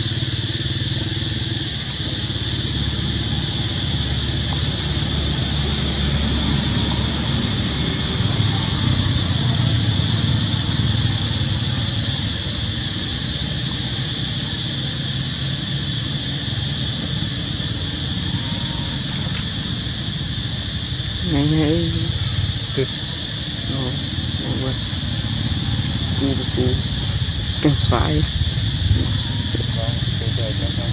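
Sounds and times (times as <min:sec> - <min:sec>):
constant low rumble: 0:00.0 - 0:30.9
high-pitched insect drone: 0:00.0 - 0:30.9.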